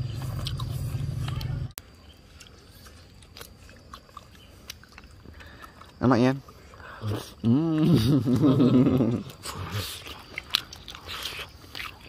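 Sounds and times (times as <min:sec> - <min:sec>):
people chewing: 0:00.0 - 0:12.0
steady low hum: 0:00.0 - 0:12.0.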